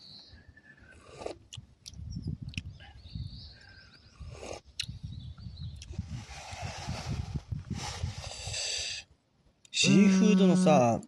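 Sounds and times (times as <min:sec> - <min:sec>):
low rumble on microphone: 0:01.9 - 0:08.4.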